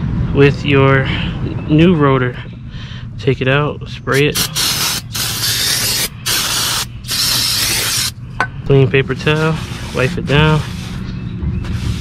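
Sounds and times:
aerosol spray can hissing: 0:04.2 - 0:08.2.

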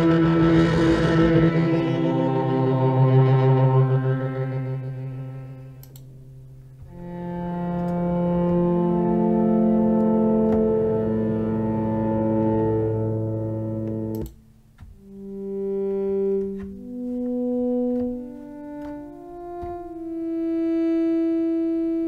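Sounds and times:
slow synth pad notes: 0:00.0 - 0:22.0
synthesizer chord pad: 0:00.0 - 0:22.0.

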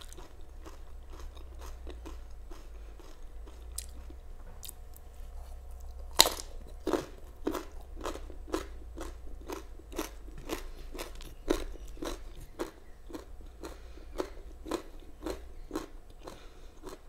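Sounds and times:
person chewing food: 0:00.0 - 0:17.0.

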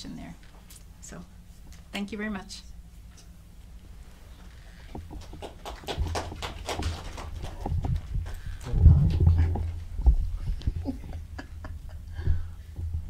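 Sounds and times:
low thumps: 0:06.0 - 0:13.0.

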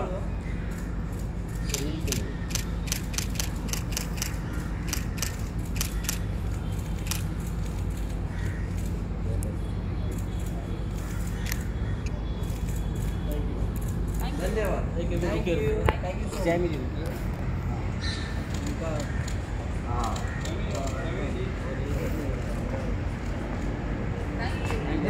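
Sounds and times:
low outdoor hum: 0:00.0 - 0:25.0
camera shutters clicking: 0:01.7 - 0:06.3.

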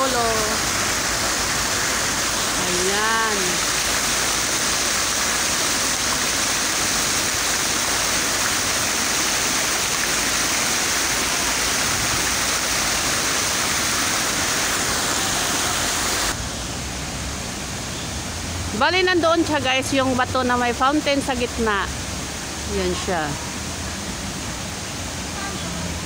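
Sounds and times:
fountain water splashing: 0:00.0 - 0:26.0.

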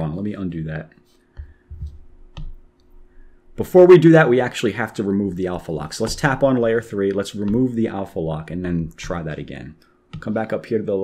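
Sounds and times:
fingertips tapping touchscreen: 0:01.3 - 0:03.1, 0:06.0 - 0:08.3, 0:10.1 - 0:10.5.

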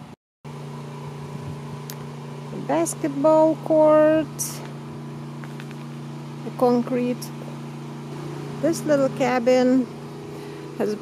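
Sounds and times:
mechanical hum: 0:00.0 - 0:11.0.

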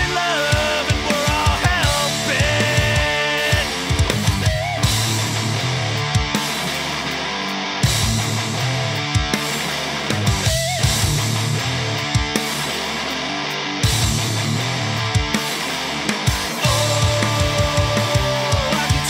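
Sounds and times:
rock music with electric guitar: 0:00.0 - 0:19.0.

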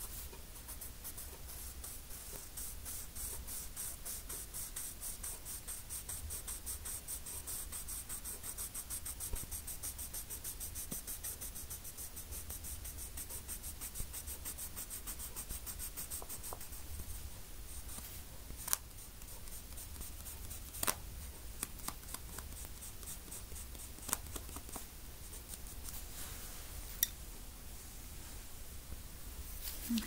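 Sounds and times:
drawing tool scratching on paper: 0:00.0 - 0:16.8, 0:17.7 - 0:26.0.

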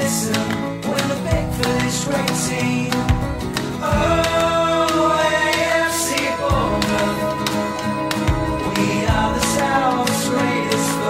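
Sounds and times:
steady drum beat: 0:03.0 - 0:10.8
band playing sustained chords: 0:03.9 - 0:11.0.

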